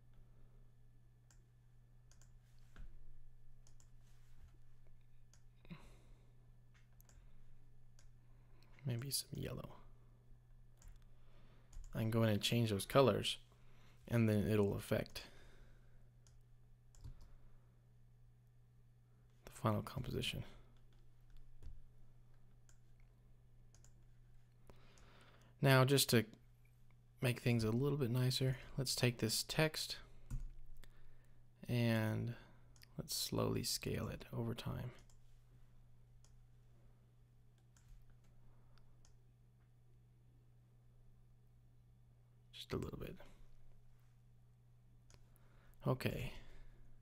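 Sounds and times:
low steady hum: 0.0 - 47.0
computer mouse clicks: 2.1 - 2.9, 3.6 - 4.0, 16.2 - 17.3, 23.7 - 24.0.

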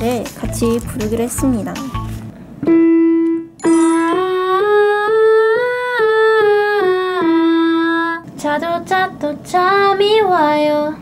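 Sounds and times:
woman singing vocal warm-up scale: 3.9 - 11.0.

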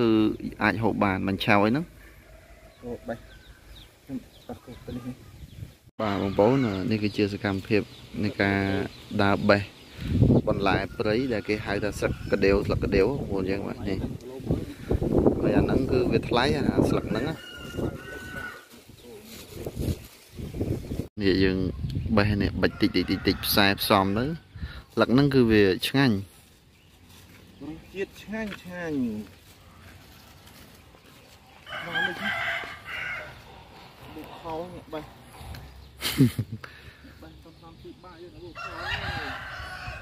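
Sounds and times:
rooster crowing: 2.0 - 3.7, 17.0 - 18.7, 31.6 - 33.9, 38.6 - 40.0
steps on dry grass: 17.2 - 21.1, 25.8 - 34.6
fowl calling: 31.6 - 35.8.

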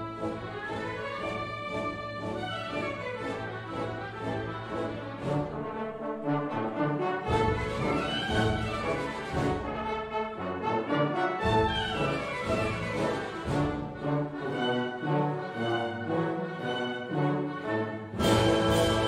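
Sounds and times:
brass horns and trombones: 0.0 - 19.0
orchestra playing: 0.0 - 19.0.

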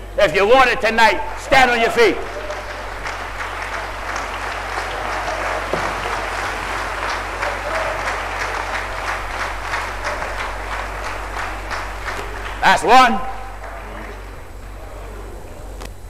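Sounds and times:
low steady hum: 0.0 - 16.0
crowd applauding: 1.2 - 15.8.

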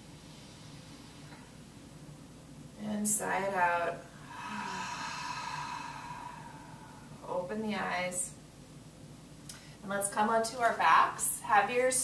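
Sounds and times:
woman sighing: 4.2 - 7.2.

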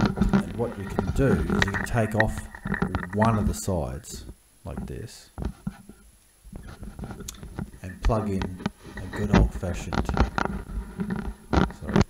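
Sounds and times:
stethoscope handling knocks and rubbing: 0.0 - 3.6, 4.2 - 12.0.

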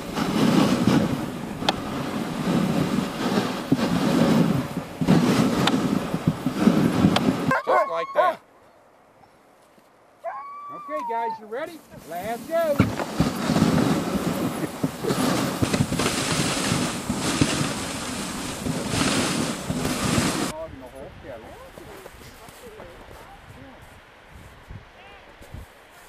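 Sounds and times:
sled runners hissing on snow: 0.0 - 8.3, 11.0 - 26.0
wind on microphone: 0.0 - 8.4, 11.9 - 26.0.

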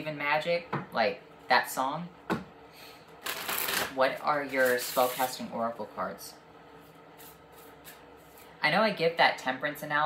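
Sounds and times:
cards being shuffled: 3.2 - 5.4.

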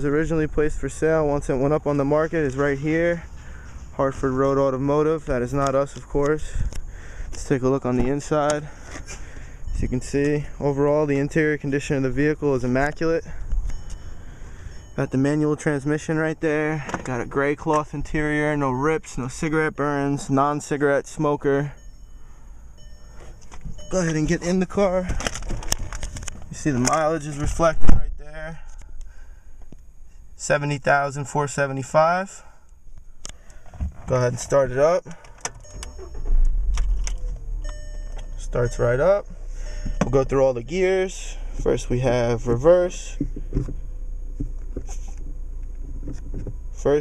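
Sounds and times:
car engine idling: 0.0 - 20.1, 34.6 - 47.0
low background rumble: 0.0 - 47.0
man speaking: 9.8 - 13.4, 23.8 - 25.2, 26.5 - 28.7, 38.3 - 43.2.

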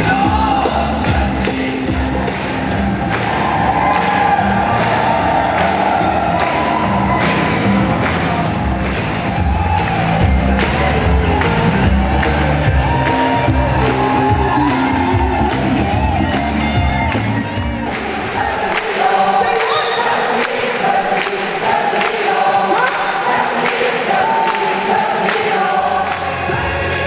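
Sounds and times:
gospel choir singing: 0.0 - 7.7, 17.8 - 27.0
drum kit beat: 0.0 - 18.2
keyboard: 0.0 - 27.0.

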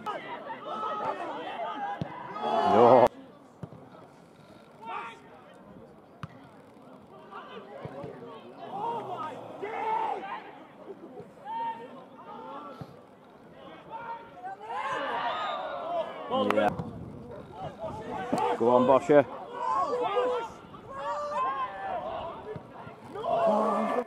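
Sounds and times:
players and spectators shouting: 0.0 - 3.1, 4.7 - 5.4, 7.2 - 10.8, 11.4 - 12.8, 13.5 - 16.7, 17.3 - 24.0.

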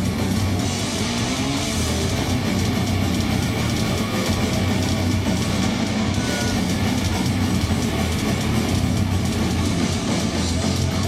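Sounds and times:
metal band playing live: 0.0 - 11.0.

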